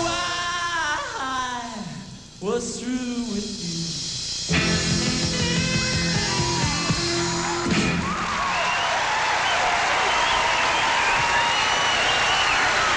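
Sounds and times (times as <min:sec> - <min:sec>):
rockabilly band final chord: 0:04.5 - 0:08.4
audience cheering and applause: 0:05.3 - 0:12.9.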